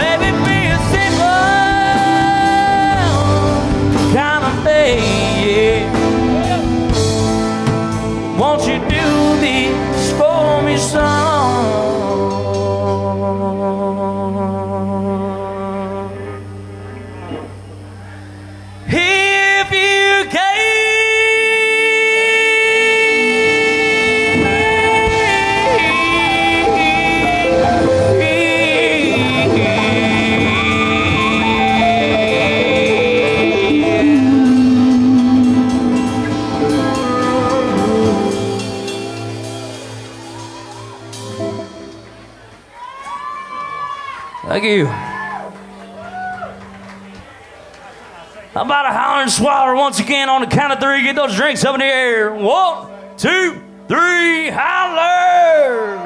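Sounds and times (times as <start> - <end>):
live rock band playing: 0.0 - 21.1, 21.9 - 43.3, 44.2 - 48.6, 51.2 - 56.0.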